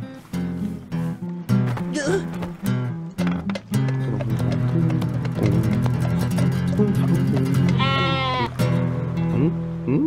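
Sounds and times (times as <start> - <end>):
background music: 0.0 - 9.8
goat bleating: 6.6 - 8.7.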